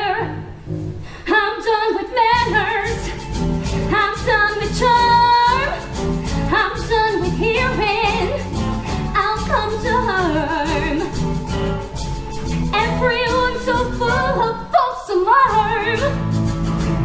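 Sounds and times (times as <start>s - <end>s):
woman singing with vibrato: 0.0s - 0.6s, 1.2s - 11.4s, 12.7s - 16.2s
band accompaniment: 2.3s - 14.7s, 15.4s - 17.0s.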